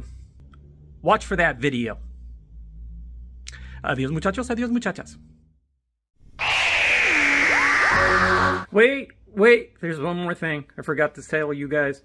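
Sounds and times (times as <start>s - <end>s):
loud rushing hiss with high tone: 6.4s - 8.6s.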